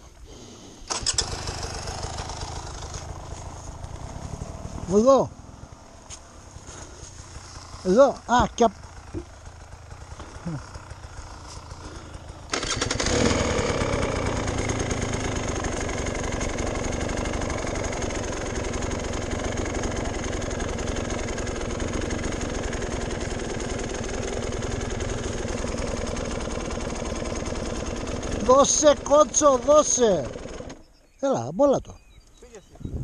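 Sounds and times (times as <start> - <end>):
dirt bike engine starting: 0.1 - 31.0.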